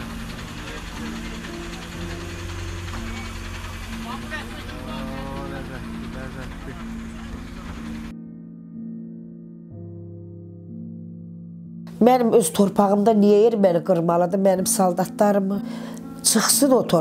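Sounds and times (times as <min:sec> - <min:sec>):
steady low hum: 0:00.0 - 0:08.1
music: 0:00.0 - 0:17.0.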